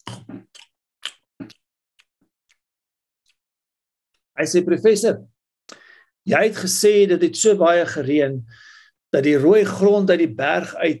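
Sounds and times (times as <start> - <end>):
mouth clicks and lip smacks: 0.0 - 2.6.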